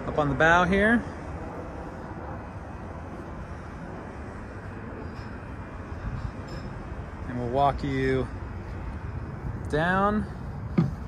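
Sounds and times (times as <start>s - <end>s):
low outdoor background rumble: 0.0s - 11.0s.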